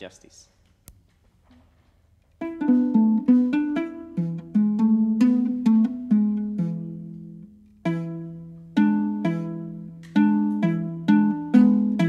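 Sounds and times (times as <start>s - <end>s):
lyre plucked notes: 2.4s - 12.0s.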